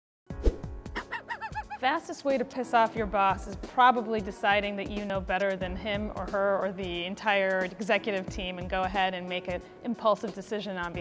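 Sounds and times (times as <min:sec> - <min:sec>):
woman's voice: 0:01.6 - 0:11.0.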